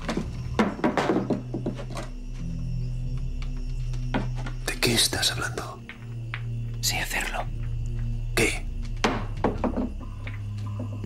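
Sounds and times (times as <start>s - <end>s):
person whispering: 6.8s - 7.5s, 8.3s - 8.7s.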